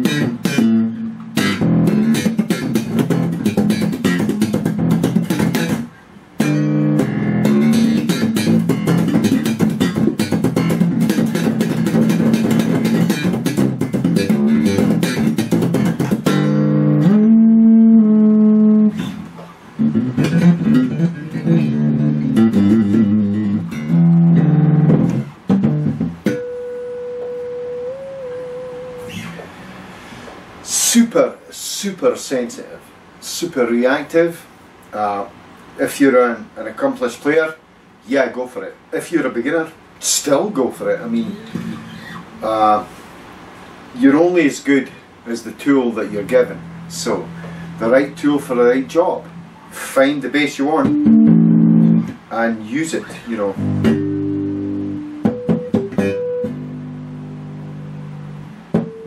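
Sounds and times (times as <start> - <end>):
electric bass guitar solo: 0.0 - 29.8, 41.1 - 42.7, 46.1 - 50.0, 50.7 - 52.3, 53.3 - 59.0.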